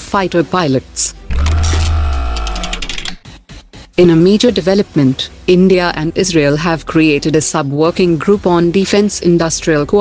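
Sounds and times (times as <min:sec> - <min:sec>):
deep bass note: 0:01.3 - 0:02.9
steady tones: 0:01.3 - 0:03.2.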